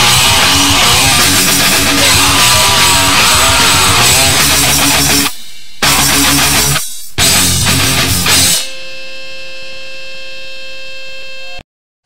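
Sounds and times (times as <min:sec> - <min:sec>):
heavy metal punk band music: 0:00.0 - 0:08.8.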